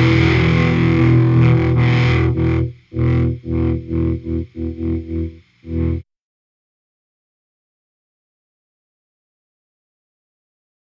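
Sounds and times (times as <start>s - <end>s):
reggae song with distorted guitar: 0.0s - 6.0s.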